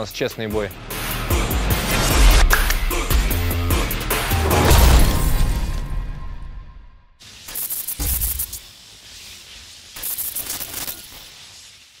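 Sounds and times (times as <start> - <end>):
rapid noisy hits: 0.7 - 5.7
sharp hit with deep boom: 0.8 - 7.0
crash: 4.4 - 6.9.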